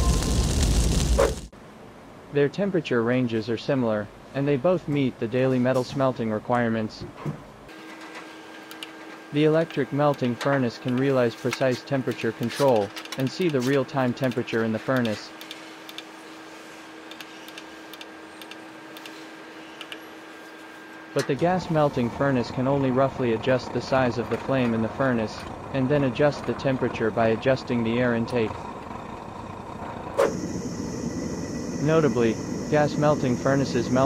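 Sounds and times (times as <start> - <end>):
gas burner hissing: 0.0 - 1.5, 27.4 - 34.0
faint steady hum: 17.6 - 34.0.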